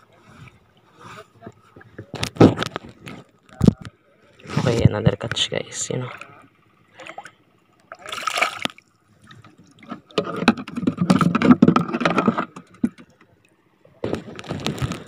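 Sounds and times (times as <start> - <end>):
seawater splashing and sloshing: 5.8 - 15.0.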